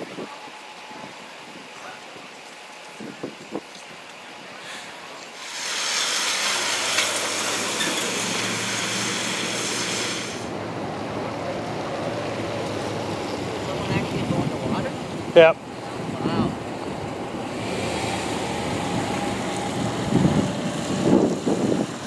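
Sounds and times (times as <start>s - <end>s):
emergency vehicle engine hum: 0.0s - 22.0s
low street ambience: 0.0s - 22.0s
loud rushing noise: 5.4s - 22.0s.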